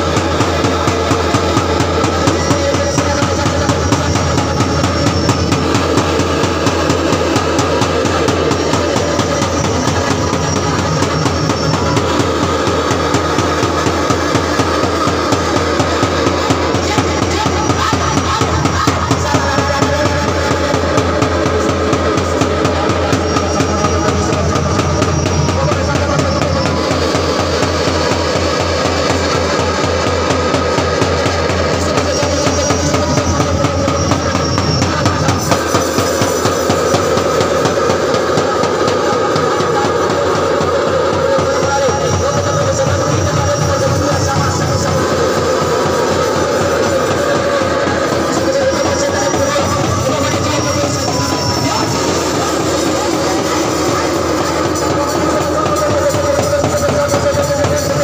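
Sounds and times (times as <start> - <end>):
loud music with fast drum beat: 0.0 - 58.0.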